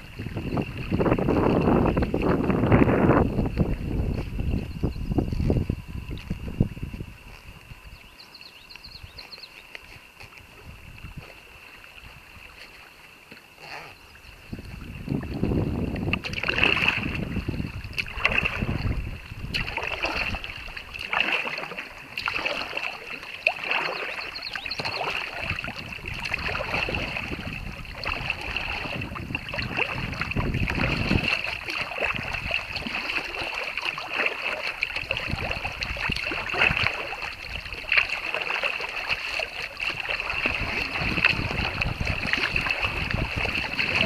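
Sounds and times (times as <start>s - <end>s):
wind buffeting microphone: 0.0s - 8.1s, 10.3s - 11.4s, 14.2s - 21.3s, 24.4s - 44.0s
paddle strokes splashing: 0.0s - 44.0s
water sloshing against hull: 0.0s - 44.0s.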